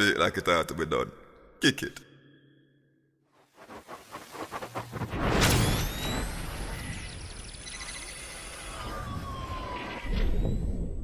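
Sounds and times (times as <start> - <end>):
siren-like falling tone: 4.4 - 11.0.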